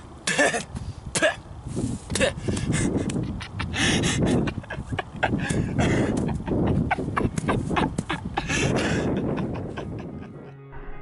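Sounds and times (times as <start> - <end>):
boy coughing: 0.3 - 1.4.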